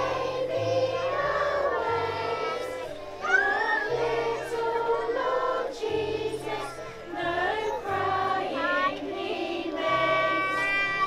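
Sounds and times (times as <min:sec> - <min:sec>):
group of adults and children singing: 0:00.0 - 0:11.0.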